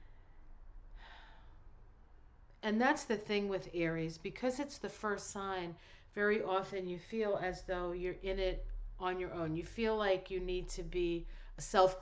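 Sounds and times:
woman breathing softly: 0.0 - 1.8.

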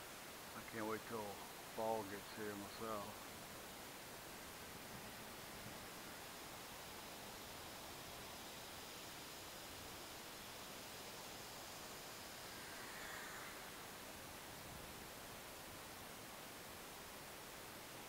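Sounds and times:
faint steady hiss: 0.0 - 18.0.

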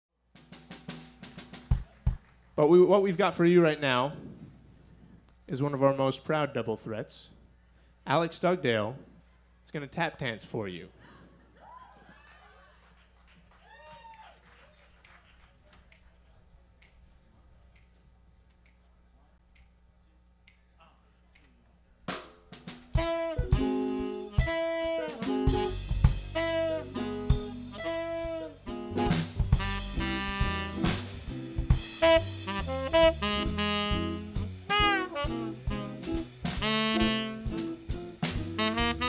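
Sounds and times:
light snare drum strokes: 0.4 - 2.3, 22.1 - 39.0.

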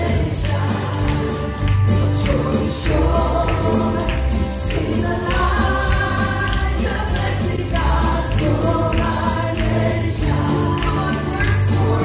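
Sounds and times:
group singing in harmony: 0.0 - 12.0
musical accompaniment: 0.0 - 12.0.

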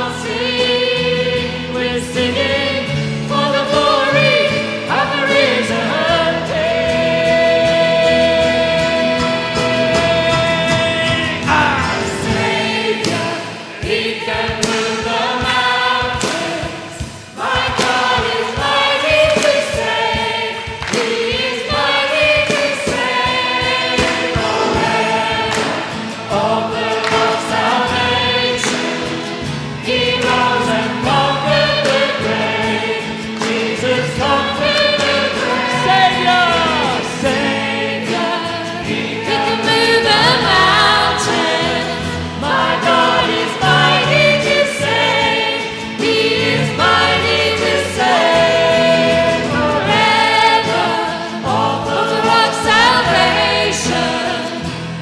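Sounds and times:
congregation singing: 0.0 - 55.0
worship band playing: 0.0 - 55.0.

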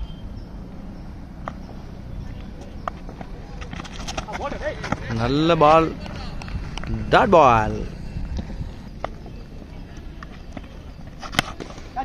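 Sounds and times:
low outdoor background noise: 0.0 - 12.0.

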